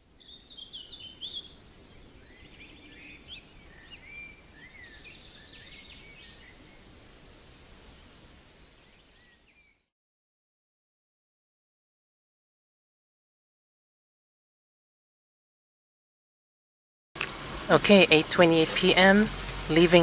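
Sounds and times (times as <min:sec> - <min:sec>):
outdoor background hiss: 0:00.0 - 0:09.9, 0:17.2 - 0:20.0
small birds chirping: 0:00.0 - 0:09.9, 0:17.2 - 0:20.0.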